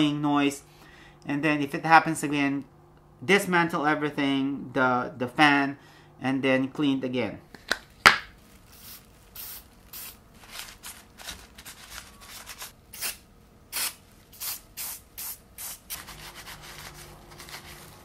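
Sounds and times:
aerosol spray bursts: 0:08.7 - 0:10.2, 0:13.0 - 0:16.0.

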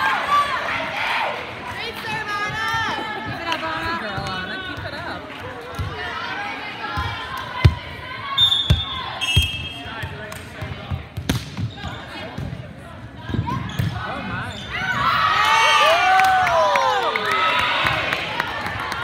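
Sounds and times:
shoe squeaks: 0:13.7 - 0:15.0
girls shouting and cheering: 0:14.9 - 0:19.0.

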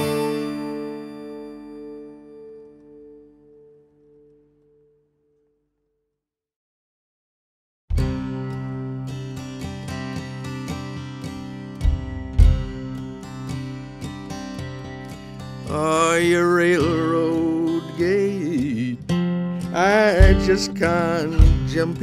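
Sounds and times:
acoustic guitar chords: 0:00.0 - 0:05.8, 0:07.9 - 0:22.0
low thuds: 0:11.8 - 0:12.9, 0:20.2 - 0:22.0.

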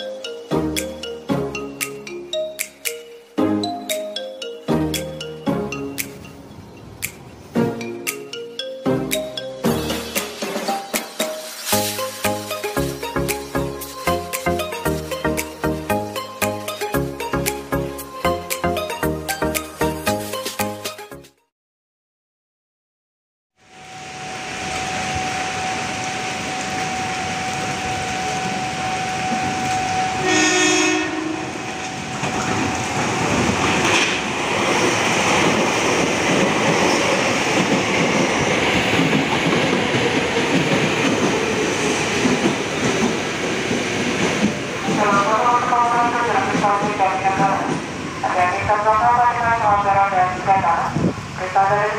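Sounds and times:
train horn blast: 0:27.5 - 0:32.5
train wheels rushing on rails: 0:28.4 - 0:48.8.

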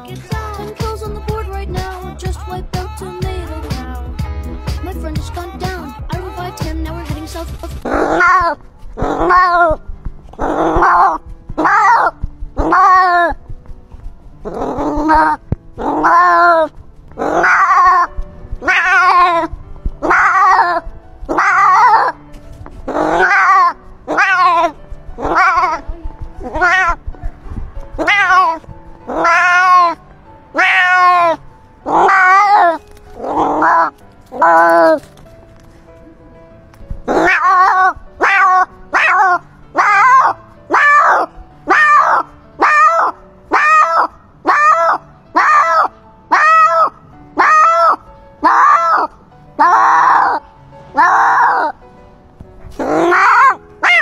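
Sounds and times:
music with low beat: 0:00.0 - 0:31.6, 0:32.2 - 0:43.1
cat meowing: 0:07.9 - 0:09.8, 0:10.4 - 0:13.4, 0:14.5 - 0:22.2, 0:22.9 - 0:35.1, 0:37.1 - 0:51.8, 0:52.8 - 0:54.0.

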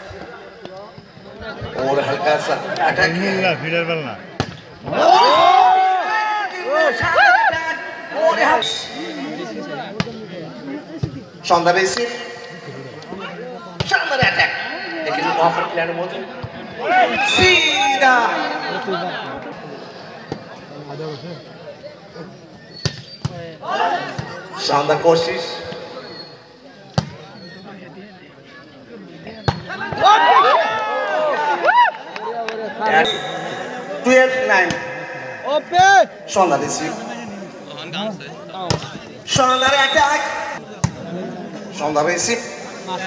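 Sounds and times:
loud drawn-out shout: 0:04.9 - 0:08.2, 0:29.8 - 0:32.0.

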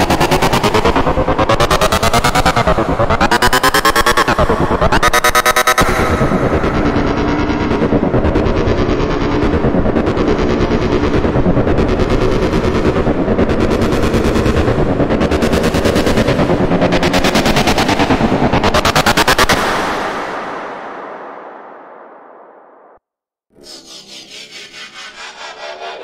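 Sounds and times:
electronic riser sound effect: 0:23.6 - 0:26.0.

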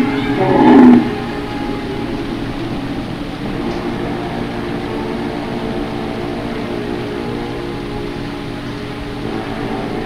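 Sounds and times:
dinosaur roar: 0:00.0 - 0:01.4
background music: 0:00.0 - 0:10.0.

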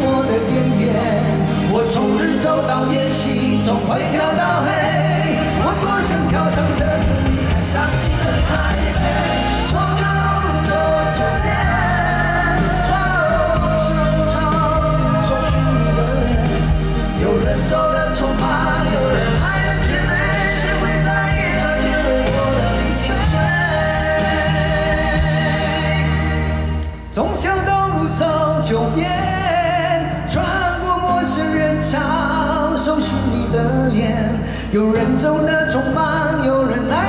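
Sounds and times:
live pop-rock ballad through speakers: 0:00.0 - 0:37.0
two men singing: 0:00.0 - 0:37.0.

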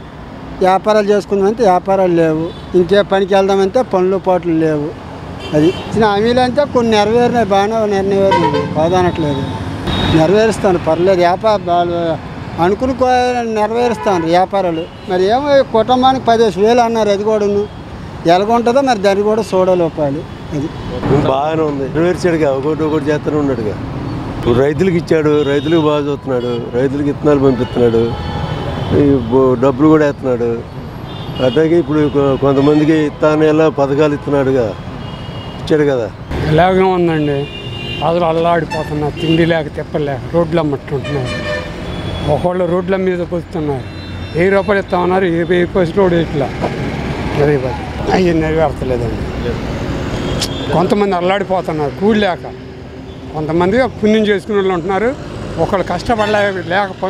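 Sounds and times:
street traffic: 0:00.0 - 0:57.0
man speaking: 0:00.6 - 0:23.8, 0:24.4 - 0:28.3, 0:28.9 - 0:30.7, 0:31.4 - 0:34.8, 0:35.7 - 0:41.4, 0:42.2 - 0:46.6, 0:47.3 - 0:49.7, 0:50.5 - 0:52.6, 0:53.3 - 0:57.0
vehicle horn toot: 0:08.3 - 0:10.3, 0:37.1 - 0:39.6, 0:41.0 - 0:42.4, 0:43.8 - 0:45.0.

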